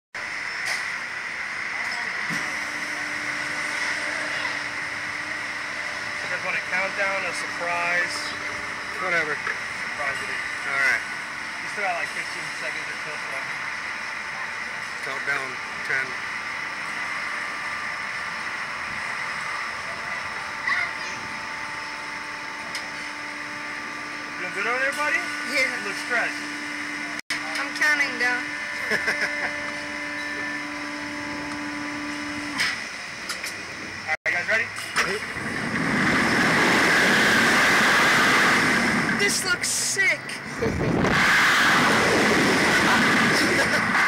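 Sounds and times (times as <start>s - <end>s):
machine hum and hiss: 0.2s - 44.0s
steady whining tones: 0.2s - 44.0s
low tone: 19.0s - 34.1s.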